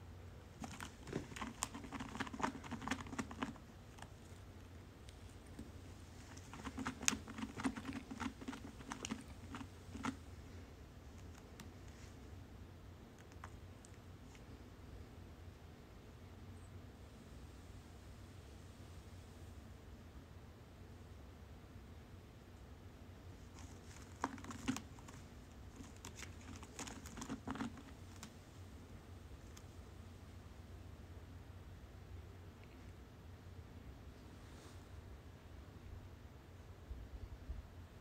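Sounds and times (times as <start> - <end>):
cat scratching post: 0.5 - 4.6, 5.2 - 10.4, 23.4 - 28.7.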